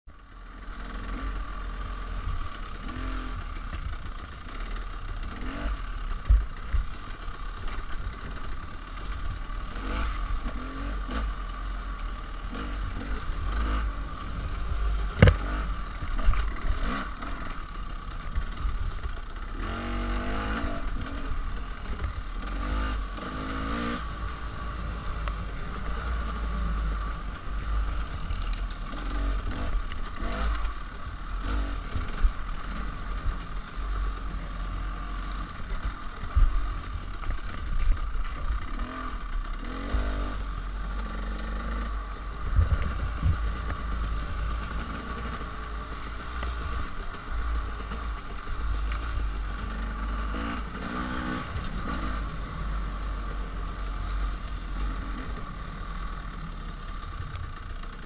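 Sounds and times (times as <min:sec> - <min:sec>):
bike rattling over ground: 0:00.4 - 0:58.0
wind rumble on microphone: 0:42.3 - 0:44.6.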